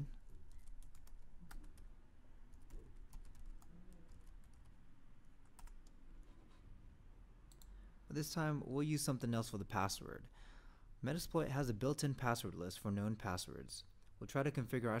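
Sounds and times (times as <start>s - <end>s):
computer keyboard typing: 0.5s - 1.8s, 2.5s - 4.8s, 5.4s - 6.0s.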